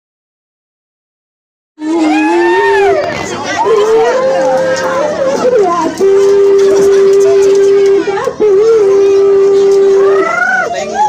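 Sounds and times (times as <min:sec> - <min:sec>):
person singing long held notes: 0:01.8 - 0:10.7
children and crowd voices: 0:01.8 - 0:11.0.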